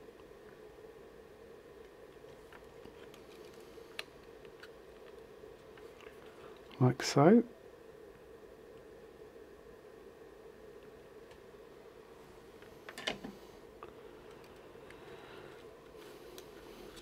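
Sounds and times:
faint steady hum: 0.0s - 17.0s
small clicks of wires handled: 2.2s - 6.8s, 14.2s - 17.0s.

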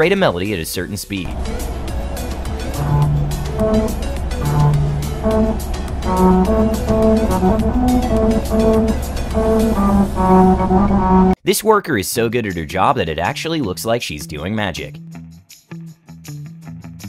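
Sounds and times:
car rumble: 1.2s - 11.4s
musical road tyre notes: 1.2s - 11.4s.

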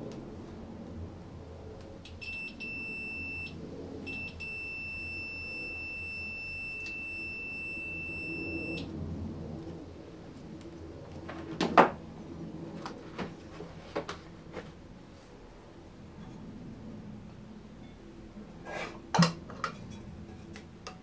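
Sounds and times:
multimeter beeping: 2.1s - 8.9s.

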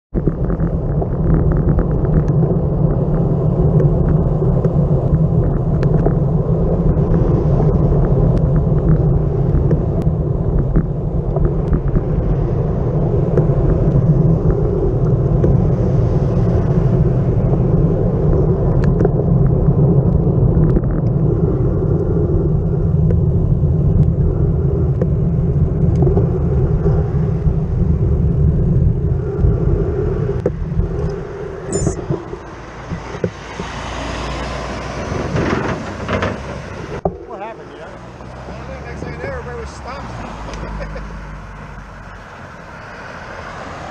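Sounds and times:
small clicks from road bumps: 0.1s - 28.2s, 30.3s - 31.2s, 32.0s - 37.2s, 37.9s - 41.0s
bike tyres on asphalt: 0.1s - 43.9s
wind buffeting microphone: 0.1s - 43.9s.

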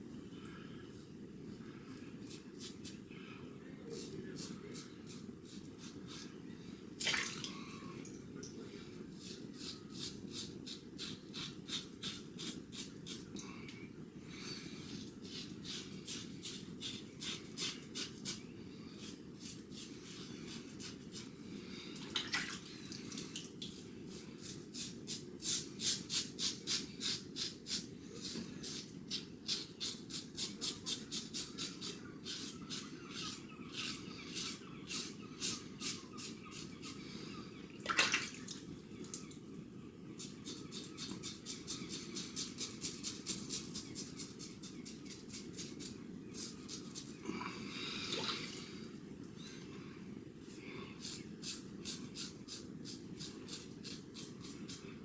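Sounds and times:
razor scraping stubble: 9.2s - 13.3s, 14.8s - 18.4s, 24.1s - 37.0s, 51.0s - 54.8s.

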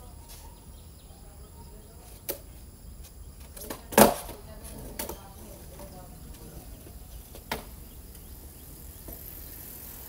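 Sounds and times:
skateboard rolling on asphalt: 2.0s - 10.0s
sharp skateboard click: 3.6s - 5.2s.

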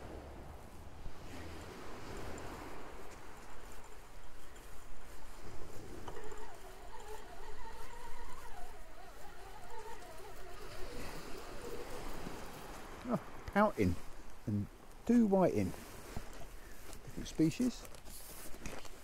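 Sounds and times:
wind and surf hiss: 0.0s - 19.0s
fishing reel whine: 5.4s - 12.9s.

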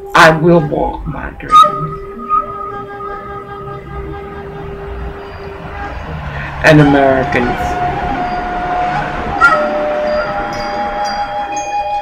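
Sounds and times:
bell-like ringing tones: 4.9s - 12.0s.

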